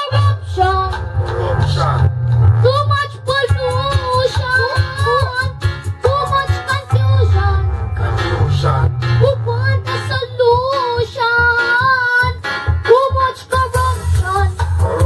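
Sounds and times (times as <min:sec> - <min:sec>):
bass-heavy backing track: 0:00.0 - 0:15.0
boy singing into microphone: 0:00.0 - 0:15.0.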